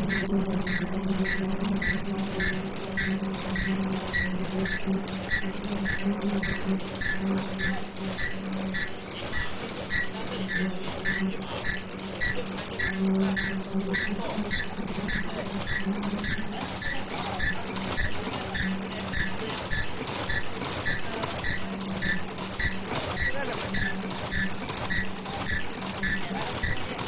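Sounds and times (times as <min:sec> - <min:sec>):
short high-pitched blips: 0:00.0 - 0:26.8
machine humming: 0:00.0 - 0:27.0.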